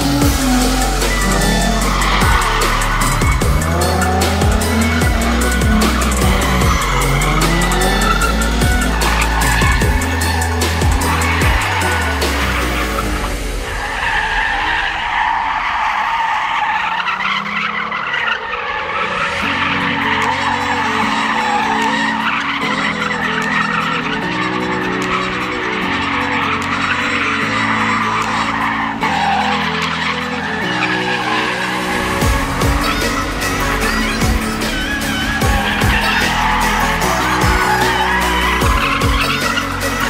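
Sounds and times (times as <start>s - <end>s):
music with stepping bass line: 0.0s - 13.5s, 31.9s - 40.0s
car tyres squealing on asphalt: 0.0s - 40.0s.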